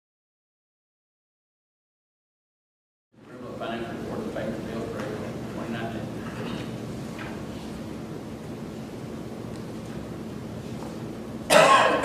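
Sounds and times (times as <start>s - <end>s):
person coughing: 11.5s - 12.0s.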